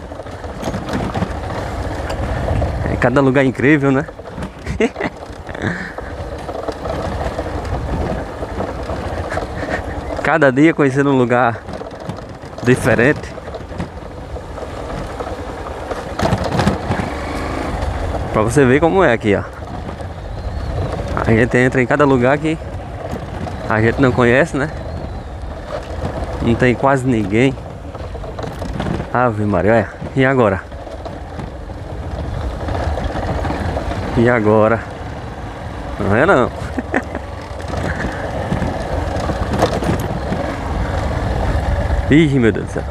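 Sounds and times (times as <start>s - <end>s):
motorcycle engine running: 0.0s - 42.9s.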